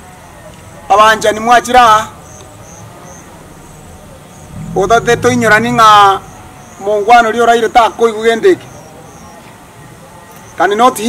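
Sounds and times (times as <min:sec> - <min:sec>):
insect chirping: 0:00.1 - 0:09.4.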